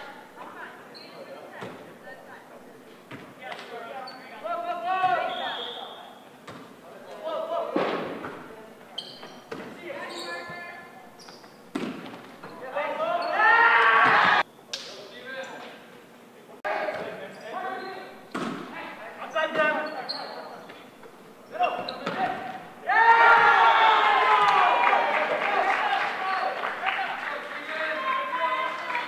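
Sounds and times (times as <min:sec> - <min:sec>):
volleyball being struck: 0:18.3 - 0:18.8
players shouting with echo: 0:22.8 - 0:29.0.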